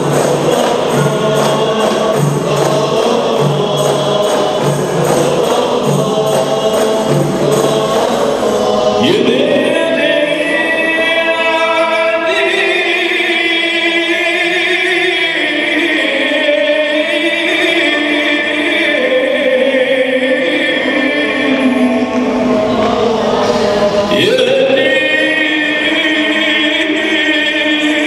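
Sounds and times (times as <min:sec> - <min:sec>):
frame drums playing a beat: 0:00.0 - 0:11.2
men singing in a group: 0:00.0 - 0:28.0
solo voice singing: 0:00.0 - 0:28.0.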